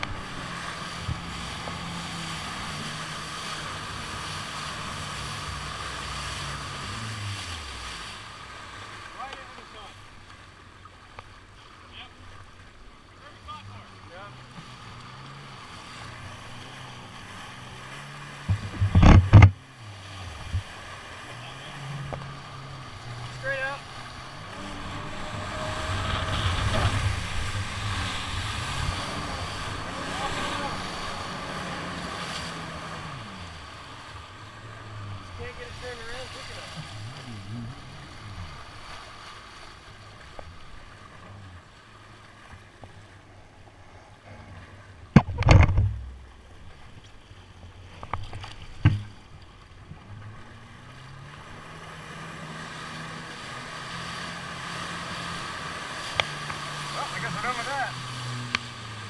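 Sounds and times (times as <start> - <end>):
burst of water and wind: 0.0 - 10.3, 14.5 - 41.2
jet ski engine running: 0.0 - 59.0
water splashing against hull: 0.0 - 59.0.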